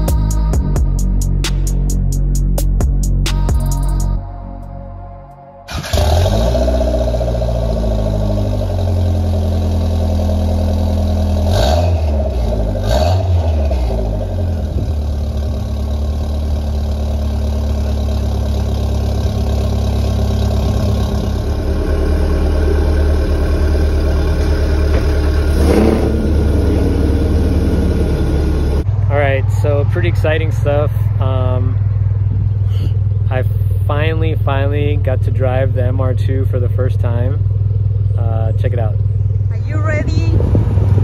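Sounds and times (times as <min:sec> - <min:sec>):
engine revving: 0:05.7 - 0:41.0
turbocharged car engine idling: 0:05.7 - 0:41.0.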